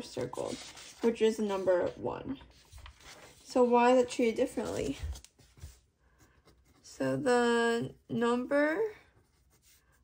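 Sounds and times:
pencil scratching on paper: 0.0s - 10.0s.

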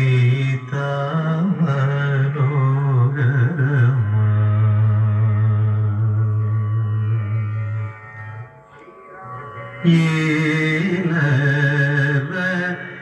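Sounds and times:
man singing devotional song: 0.0s - 6.9s, 9.8s - 13.0s.

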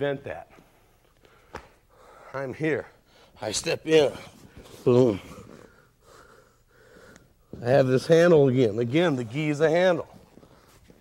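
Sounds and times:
faint breathing: 0.5s - 3.4s, 4.2s - 7.6s
cloth rustling on a mat: 10.0s - 11.0s.

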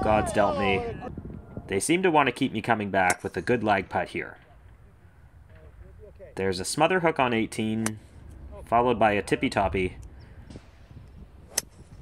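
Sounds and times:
faint wind noise: 0.0s - 12.0s
golf club striking ball: 11.5s - 11.9s.

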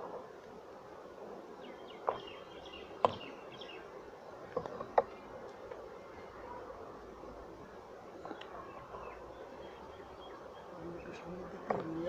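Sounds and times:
bees humming: 0.0s - 12.0s.

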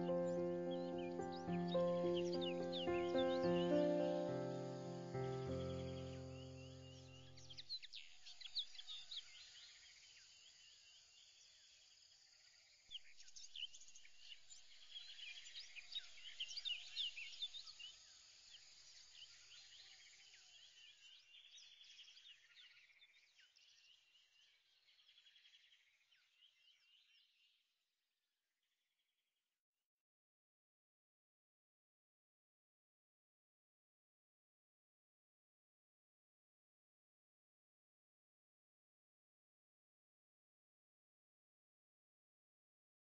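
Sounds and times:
background music: 0.0s - 7.2s
birds chirping: 0.0s - 9.4s.

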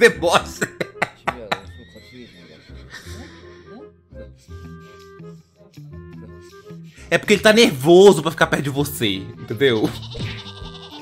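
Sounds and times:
man laughing: 0.0s - 3.4s.

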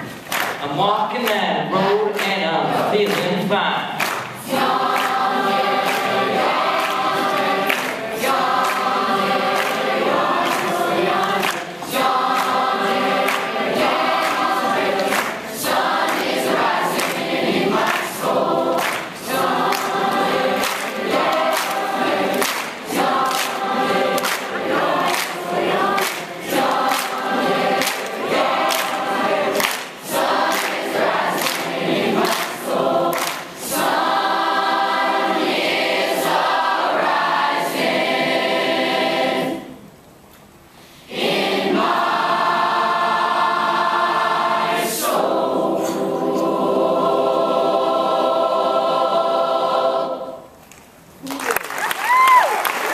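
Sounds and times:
rhythmic hand claps: 0.0s - 38.2s, 50.6s - 52.9s
mixed choir singing: 1.4s - 40.0s, 40.9s - 50.6s.

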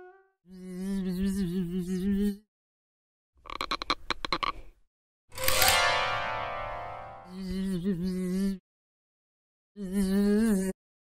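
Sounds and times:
cartoon rattling croak: 3.4s - 4.6s.

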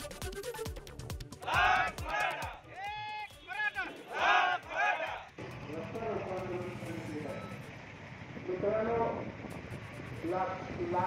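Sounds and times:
street background noise: 1.0s - 11.0s
person shouting: 1.4s - 5.3s.

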